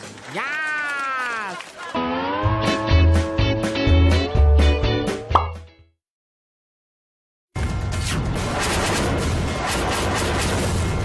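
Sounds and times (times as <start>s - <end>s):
rising pop sound effect: 5.3s - 5.7s.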